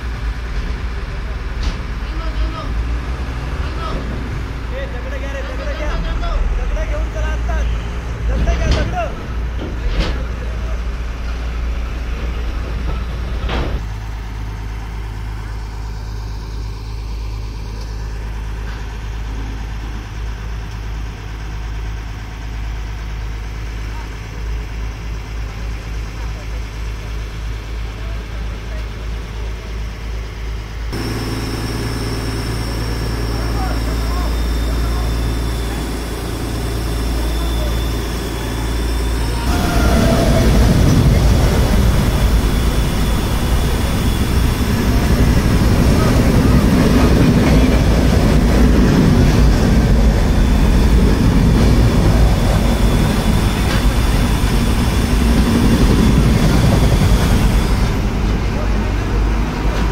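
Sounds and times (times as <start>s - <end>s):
crane diesel engine droning: 0.0s - 59.9s
loud noise: 30.9s - 59.9s.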